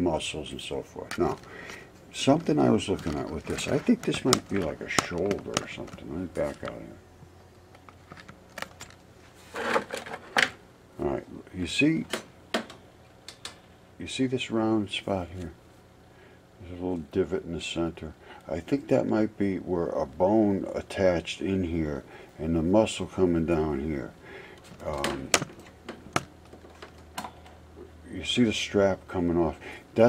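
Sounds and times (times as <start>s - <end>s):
faint low hum: 0.0s - 30.0s.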